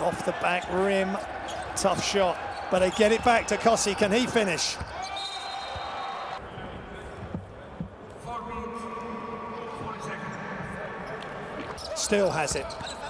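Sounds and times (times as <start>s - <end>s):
players' voices: 0.0s - 5.1s, 6.2s - 13.0s.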